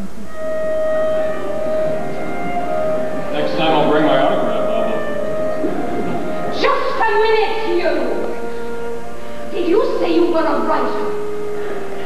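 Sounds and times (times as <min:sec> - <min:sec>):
orchestra sustained note: 0:00.0 - 0:12.0
people speaking dialogue: 0:06.5 - 0:08.4, 0:09.5 - 0:11.1.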